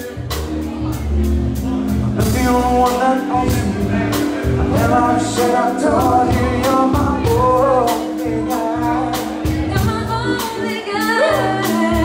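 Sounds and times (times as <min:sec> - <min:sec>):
electric bass: 0:00.0 - 0:12.0
keyboards: 0:00.0 - 0:12.0
person singing: 0:00.0 - 0:12.0
drum beat: 0:01.7 - 0:10.7.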